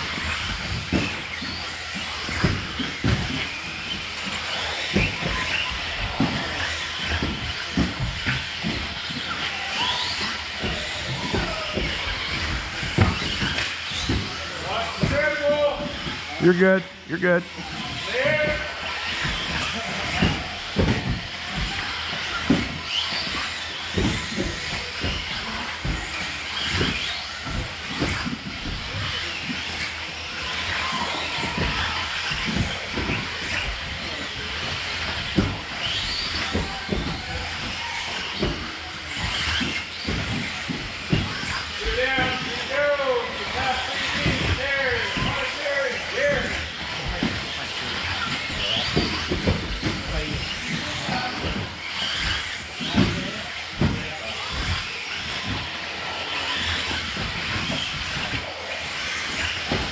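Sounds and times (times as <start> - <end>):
toy cars knocking on landings: 0.0 - 16.4, 17.6 - 59.9
electric toy car motors running: 0.0 - 59.9.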